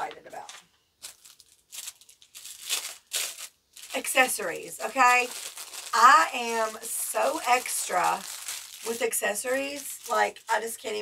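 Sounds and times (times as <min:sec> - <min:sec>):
packaging crinkling and rustling: 0:00.4 - 0:11.0.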